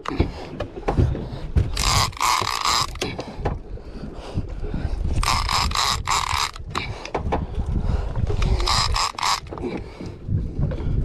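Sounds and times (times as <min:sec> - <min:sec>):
fishing reel gears whirring: 0:01.8 - 0:03.1, 0:05.1 - 0:06.9, 0:08.4 - 0:09.7.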